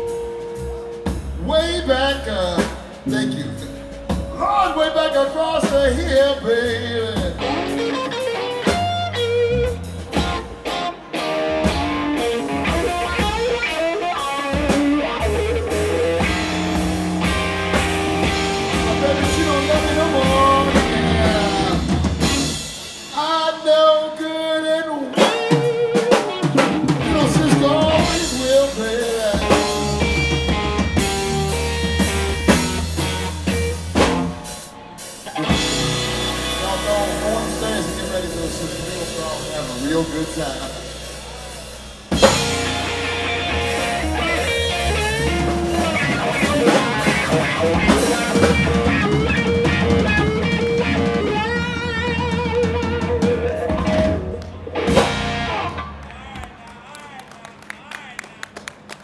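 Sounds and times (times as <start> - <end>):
bass guitar: 0.0 - 56.6
drum kit: 0.0 - 56.7
electric guitar lines: 2.9 - 23.1, 25.2 - 56.4.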